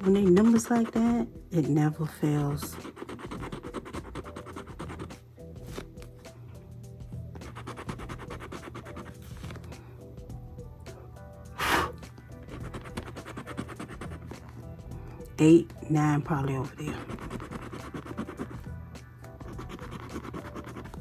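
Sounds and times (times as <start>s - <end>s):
scraper scratching lottery ticket: 0.0s - 1.3s, 2.5s - 5.2s, 7.4s - 9.5s, 12.5s - 14.3s, 16.7s - 18.6s, 19.4s - 21.0s
background music with held tones: 0.0s - 21.0s.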